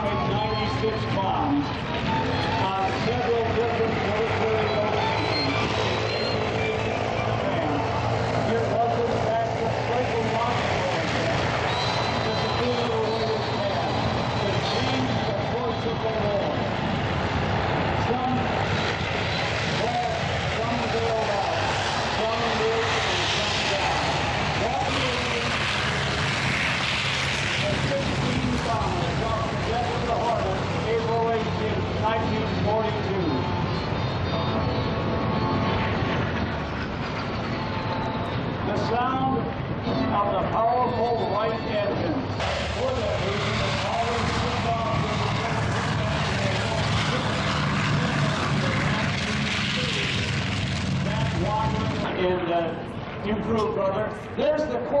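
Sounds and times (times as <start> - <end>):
propeller plane engines droning: 0.0 - 55.0.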